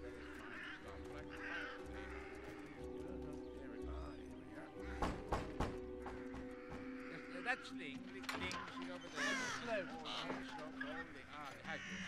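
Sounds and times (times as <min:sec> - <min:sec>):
crows cawing: 0:00.0 - 0:12.0.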